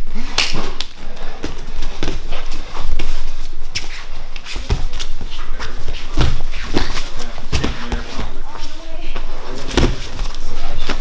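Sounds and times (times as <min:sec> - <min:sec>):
bare feet on foam mat: 0:00.0 - 0:11.0.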